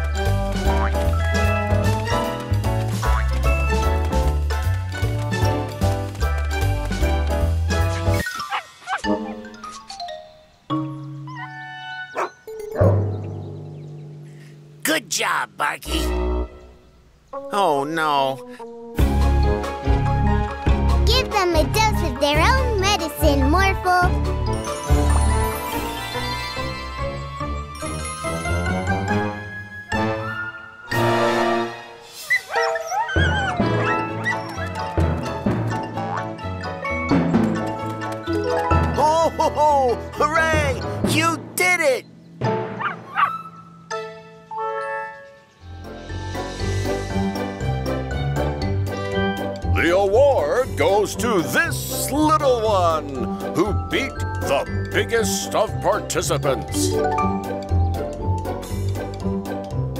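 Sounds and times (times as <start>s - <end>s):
children's cartoon music: 0.0s - 13.5s, 14.2s - 59.9s
cartoon dogs yipping and whimpering: 8.1s - 9.8s, 11.2s - 12.5s, 32.1s - 35.1s, 42.8s - 43.9s
cartoon dogs barking: 12.1s - 12.4s, 42.8s - 43.7s.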